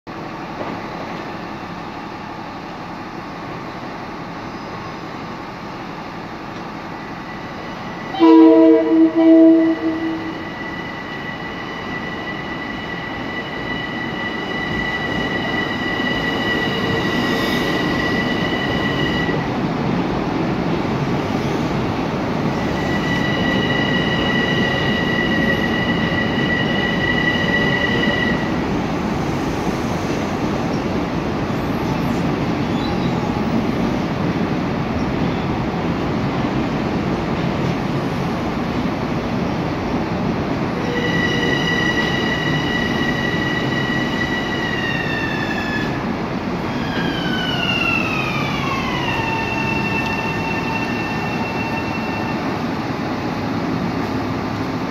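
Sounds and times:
train wheels rumbling on rail: 0.1s - 54.9s
high-pitched wheel squeal: 7.3s - 19.4s, 22.5s - 28.6s, 40.8s - 46.0s, 46.7s - 52.6s.

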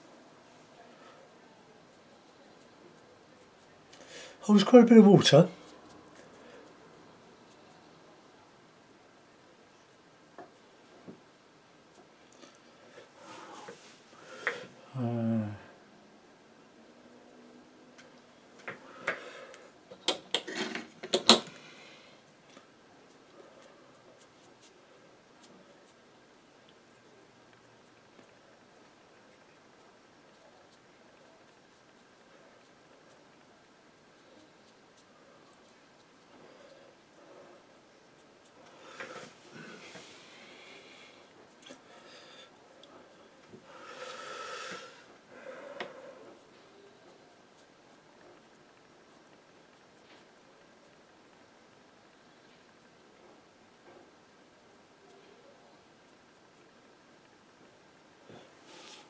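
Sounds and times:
person breathing through nose: 43.6s - 46.3s, 58.6s - 59.0s.

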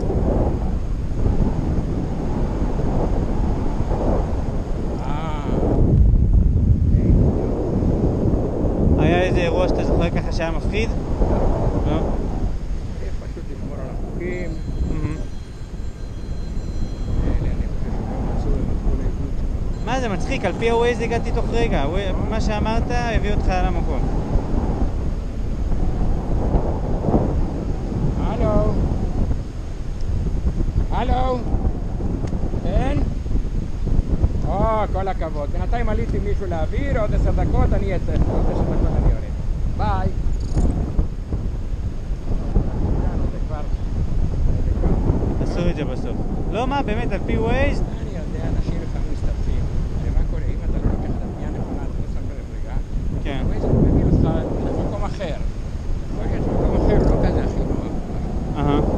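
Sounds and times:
wind buffeting microphone: 0.0s - 58.9s.

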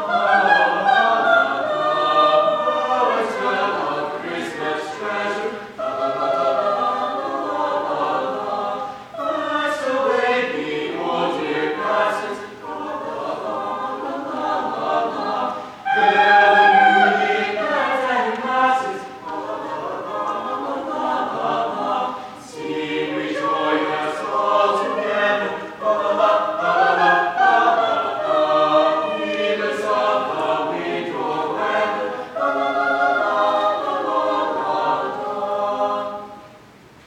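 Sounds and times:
choir singing carol a cappella: 0.0s - 36.9s.

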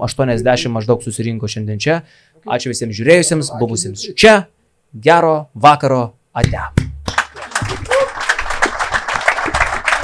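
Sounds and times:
audience applauding: 7.1s - 10.0s.

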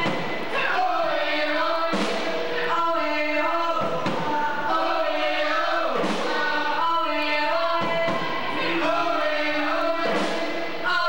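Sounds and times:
voices singing together: 0.0s - 11.0s.

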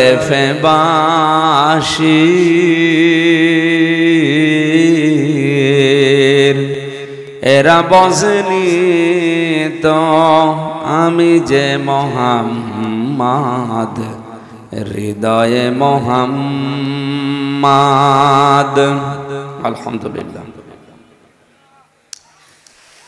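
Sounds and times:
man chanting through pa system: 0.0s - 21.0s.

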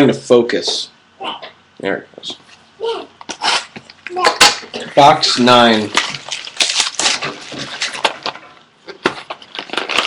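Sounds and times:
plastic shrink wrap crinkling and tearing: 4.4s - 10.0s.

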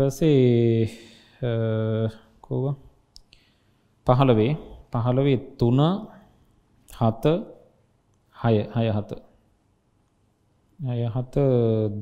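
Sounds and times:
man speaking: 0.0s - 2.9s, 4.1s - 6.3s, 6.9s - 7.6s, 8.4s - 9.3s, 10.8s - 12.0s.

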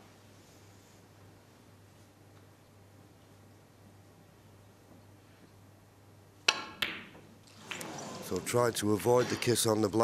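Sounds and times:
cue tip striking ball: 6.5s - 8.0s.

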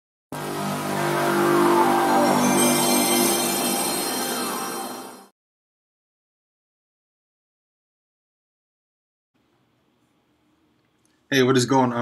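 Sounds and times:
droning tone: 0.4s - 5.3s.

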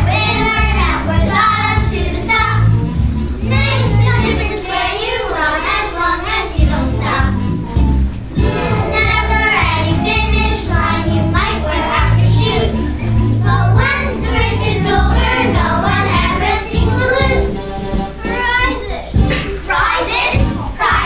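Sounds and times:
children singing: 0.0s - 2.8s, 3.4s - 7.4s, 8.4s - 18.9s, 19.5s - 21.0s
instrumental accompaniment: 0.0s - 21.0s.

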